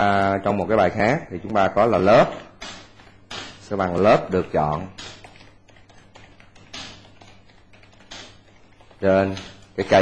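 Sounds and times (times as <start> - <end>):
keyboard typing clicks: 1.4 - 9.8.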